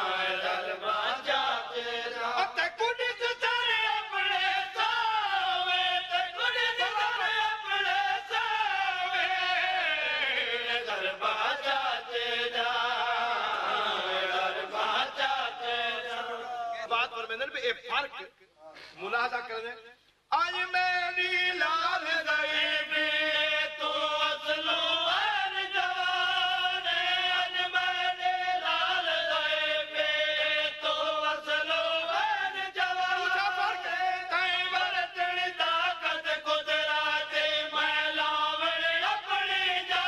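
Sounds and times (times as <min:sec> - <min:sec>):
men chanting in chorus: 0:00.0 - 0:17.2, 0:21.2 - 0:40.0.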